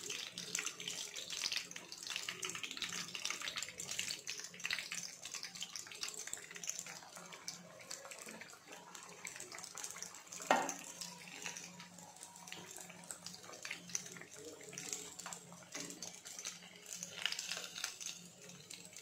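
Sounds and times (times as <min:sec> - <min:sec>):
oil sizzling while frying: 0:00.0 - 0:19.0.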